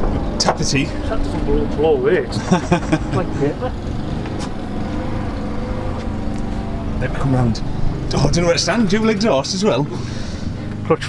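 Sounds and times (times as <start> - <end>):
petrol engine idling: 0.0 - 11.0.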